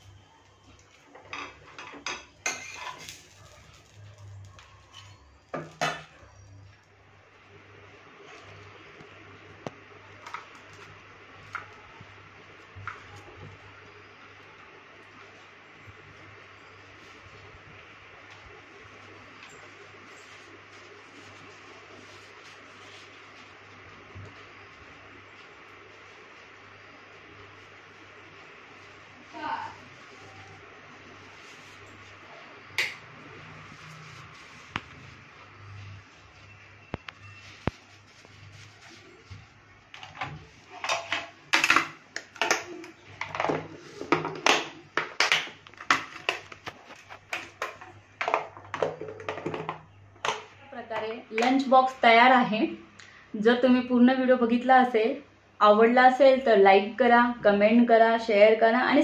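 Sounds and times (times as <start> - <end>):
metal kitchenware clanking: 1.2 - 3.2.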